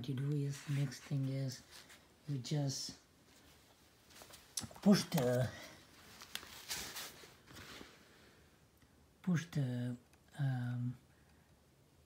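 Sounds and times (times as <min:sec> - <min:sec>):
hands rustling: 0:03.2 - 0:08.2.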